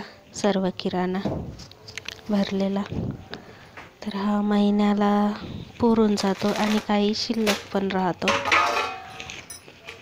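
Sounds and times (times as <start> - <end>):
woman speaking: 0.0 - 1.4, 2.2 - 3.3, 4.0 - 8.6.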